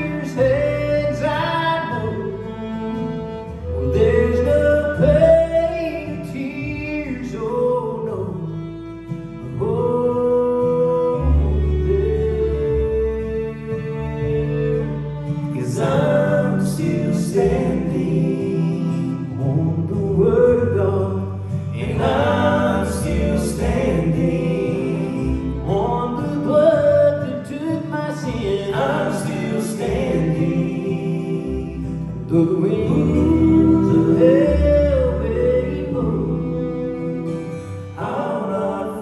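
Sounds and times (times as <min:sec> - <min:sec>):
people singing with harmonies: 0:00.0 - 0:02.8, 0:03.6 - 0:08.9, 0:09.5 - 0:39.0
bluegrass gospel band playing: 0:00.0 - 0:39.0.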